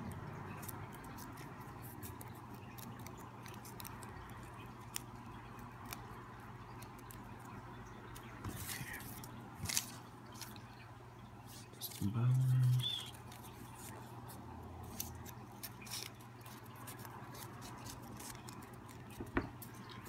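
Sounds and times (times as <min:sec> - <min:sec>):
low steady hum: 0:00.0 - 0:20.0
paper folding and rustling: 0:08.4 - 0:10.7, 0:11.5 - 0:20.0.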